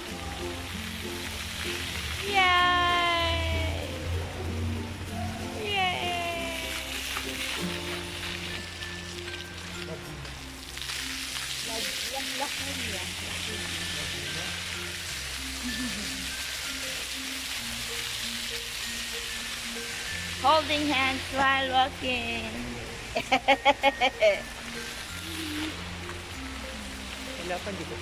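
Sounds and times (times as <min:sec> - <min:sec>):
background music with bass line: 0:00.0 - 0:28.0
fountain jets spraying water: 0:00.0 - 0:28.0.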